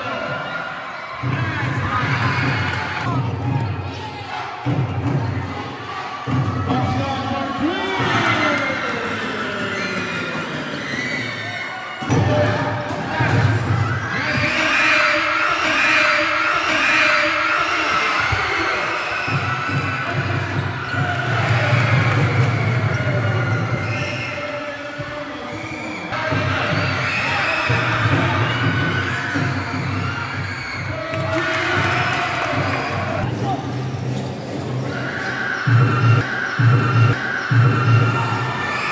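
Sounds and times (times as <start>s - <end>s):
players and spectators shouting: 0.0s - 33.8s, 34.4s - 38.9s.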